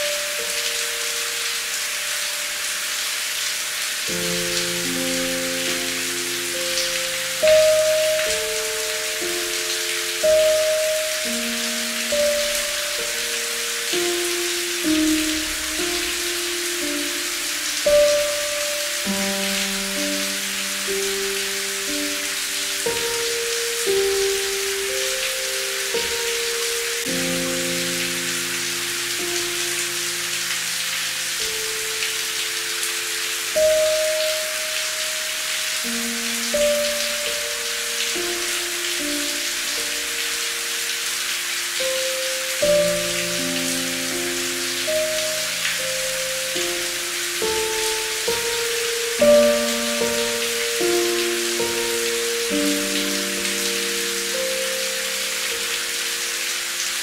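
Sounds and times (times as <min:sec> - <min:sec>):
slow soft instrumental melody: 0:00.0 - 0:57.0
steady rain hiss: 0:00.0 - 0:57.0.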